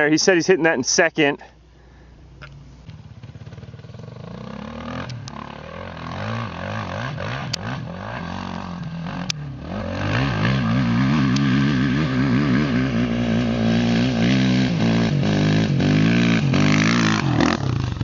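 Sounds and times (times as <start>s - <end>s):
dirt bike engine revving hard: 3.3s - 18.0s.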